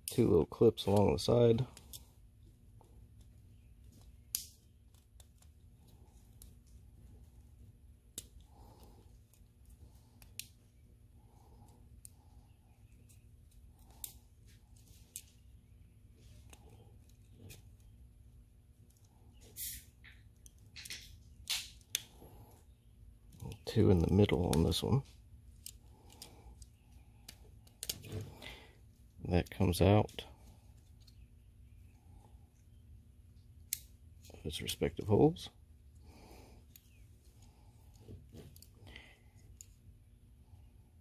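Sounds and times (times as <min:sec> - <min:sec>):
faint low hum: 0:00.0 - 0:41.0.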